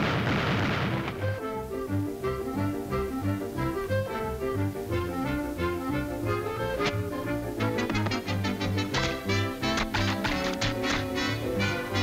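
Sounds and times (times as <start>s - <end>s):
orchestral cartoon music: 0.9s - 12.0s.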